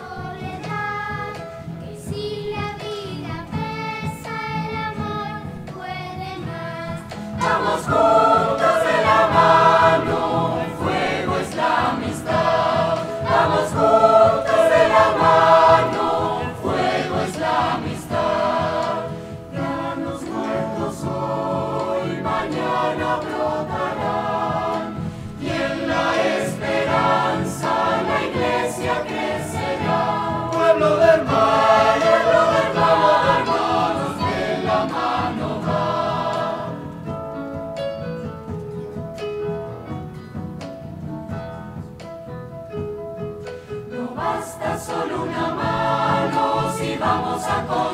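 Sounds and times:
mixed choir singing: 0.0s - 4.6s, 6.5s - 37.2s, 43.9s - 47.9s.

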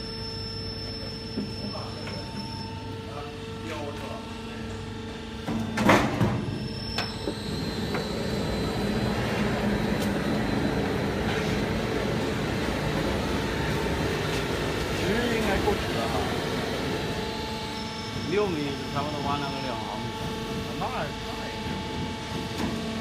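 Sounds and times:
roll forming machine humming: 0.0s - 23.0s.

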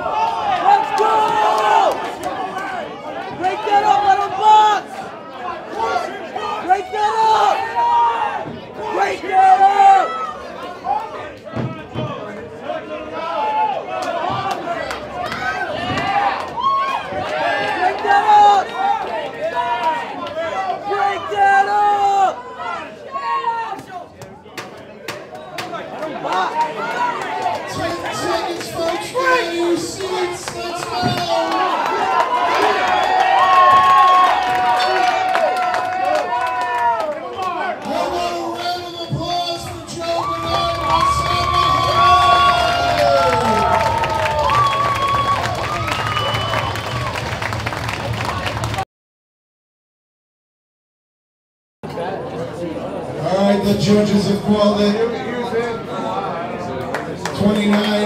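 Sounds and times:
crowd chatter: 0.0s - 33.8s, 37.0s - 44.5s, 51.8s - 58.0s
crowd shouting and cheering: 0.0s - 48.8s, 51.8s - 58.0s.

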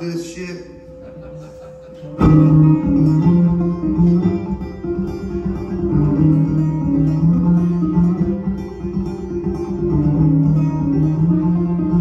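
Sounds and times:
amplified banjo: 1.1s - 12.0s.

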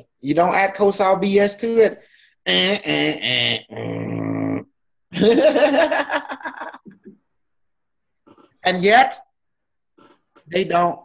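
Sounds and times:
person laughing: 5.2s - 7.2s.

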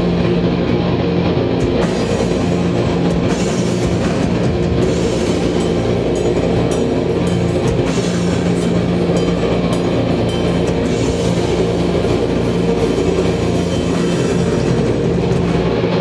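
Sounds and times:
distorted electric guitars droning: 0.0s - 16.0s
drums: 0.0s - 16.0s
cymbal hits: 1.7s - 16.0s.

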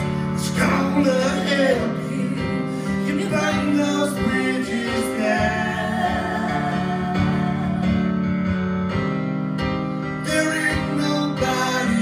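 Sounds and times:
person singing: 0.0s - 8.3s, 10.2s - 12.0s.

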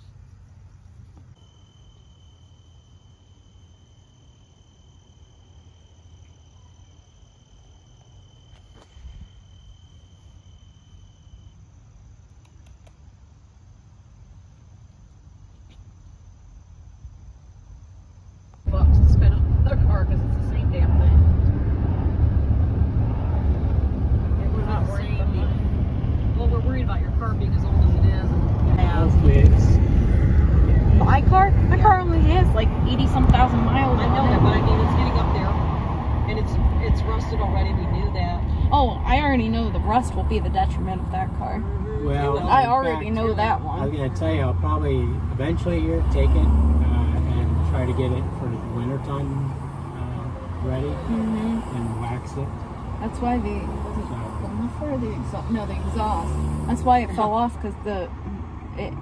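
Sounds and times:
insects trilling: 0.1s - 18.7s
road noise inside moving car: 18.6s - 59.0s.

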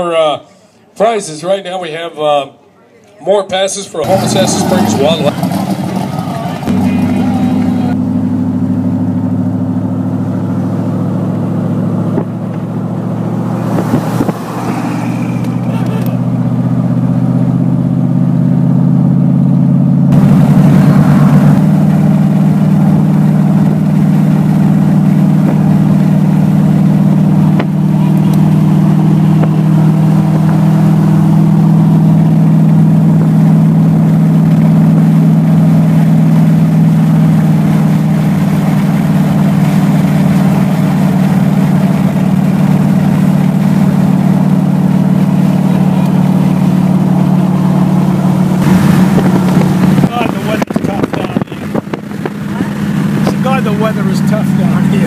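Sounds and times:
car engine running: 3.9s - 55.0s
wind and road noise: 4.0s - 55.0s.

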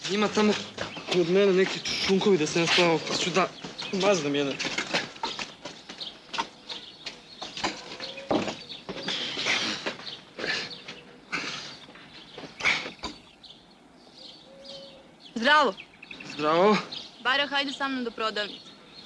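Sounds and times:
footsteps: 0.0s - 11.1s, 11.7s - 13.3s.

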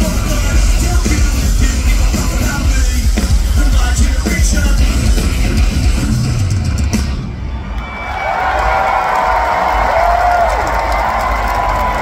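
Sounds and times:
live rock band playing: 0.0s - 7.5s
crowd cheering and yelling: 5.5s - 12.0s.

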